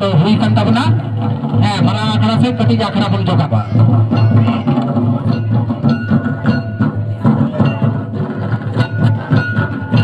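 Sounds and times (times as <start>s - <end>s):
loud drumming: 0.0s - 10.0s.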